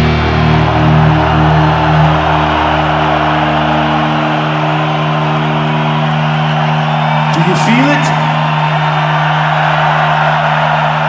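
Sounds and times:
large crowd cheering: 0.0s - 11.0s.

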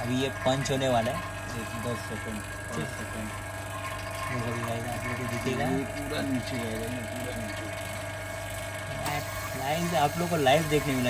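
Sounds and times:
machine electrical hum: 0.0s - 11.0s.

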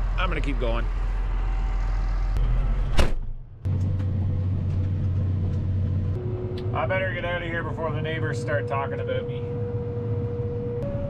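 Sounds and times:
tractor engine droning: 0.0s - 11.0s
sharp knock: 2.9s - 3.3s.

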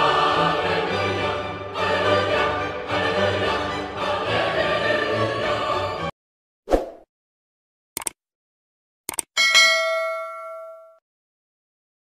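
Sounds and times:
double click: 8.0s - 8.2s, 9.1s - 9.3s
bell ding: 9.4s - 11.0s.

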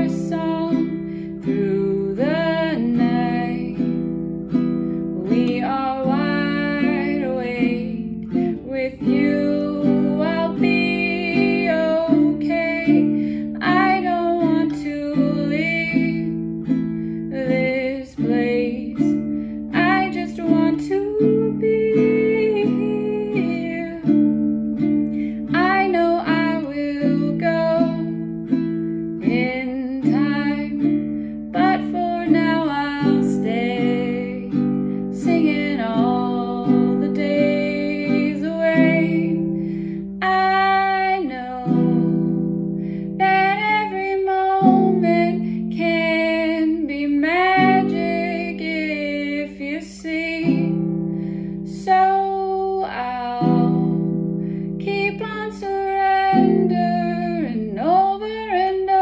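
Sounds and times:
ukulele strumming chords: 0.0s - 59.0s
woman singing: 0.0s - 59.0s.

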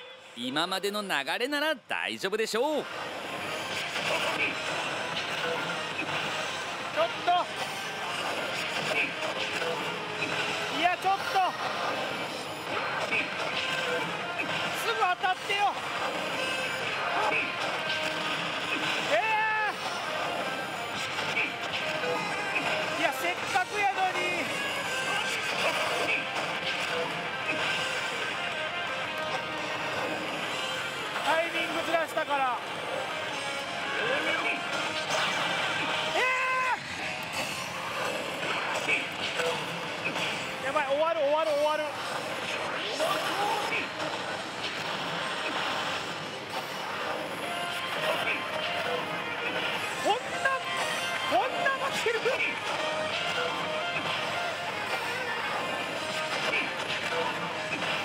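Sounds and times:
slot machine game music: 0.0s - 58.0s.

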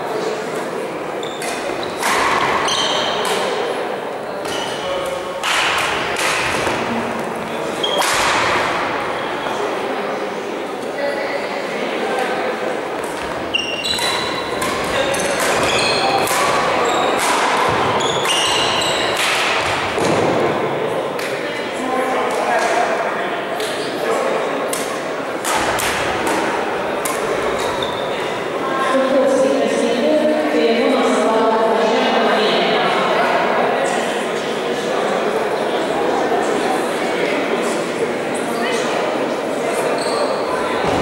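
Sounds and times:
badminton rackets hitting shuttlecock: 13.9s - 20.1s.

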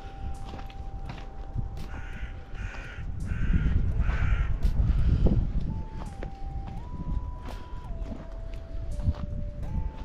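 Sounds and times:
crow cawing: 1.9s - 4.8s.

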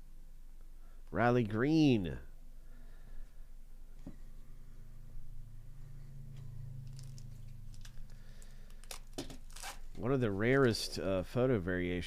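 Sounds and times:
low steady hum: 0.0s - 12.0s
plastic wrapper tearing and crinkling: 6.9s - 10.0s.

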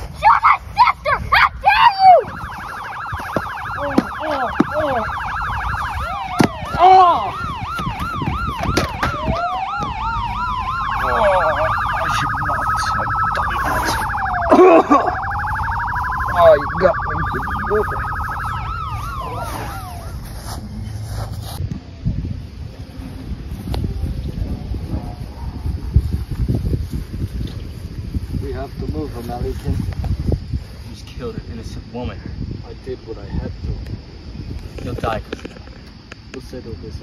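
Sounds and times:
emergency vehicle siren: 1.8s - 20.4s
person crying out: 6.1s - 7.4s, 14.4s - 15.2s.

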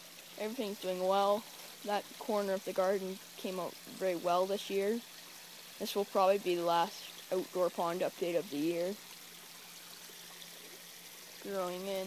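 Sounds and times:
water trickling into a pond: 0.0s - 12.0s.

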